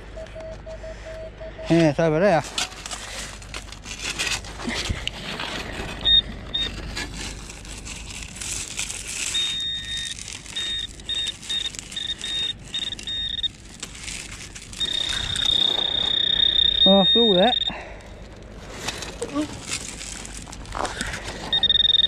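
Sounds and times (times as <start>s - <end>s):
metal detector beeps: 6.0s - 6.7s, 9.3s - 13.5s, 14.8s - 17.9s, 21.5s - 22.0s
footsteps on shingle: 18.5s - 21.7s.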